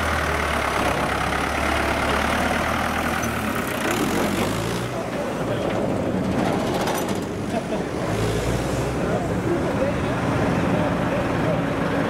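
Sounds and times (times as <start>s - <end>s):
heavy diesel engine running: 0.0s - 12.0s.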